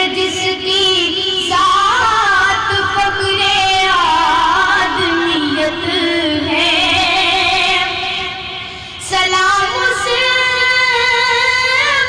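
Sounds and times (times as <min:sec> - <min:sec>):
boy singing into a microphone: 0:00.0 - 0:12.0.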